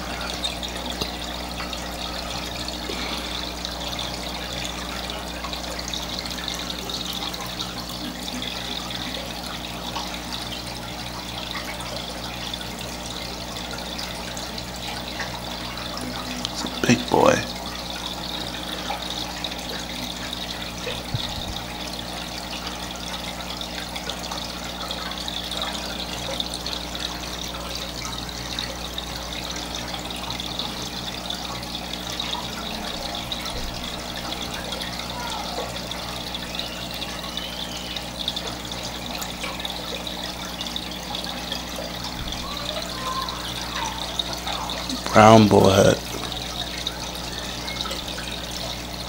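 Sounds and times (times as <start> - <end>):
low mechanical hum: 0.0 - 49.0
water trickling and bubbling: 0.0 - 49.0.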